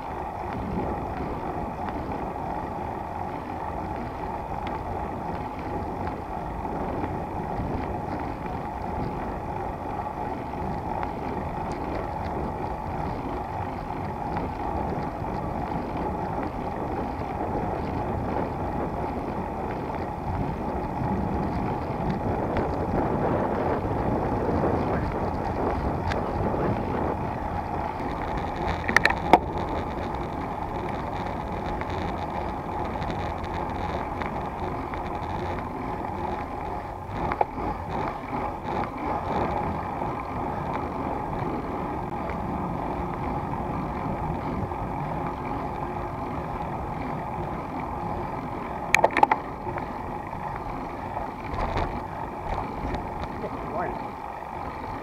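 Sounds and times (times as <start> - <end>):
tyre hum on asphalt: 0.0 - 55.0
wind rushing on microphone: 0.0 - 55.0.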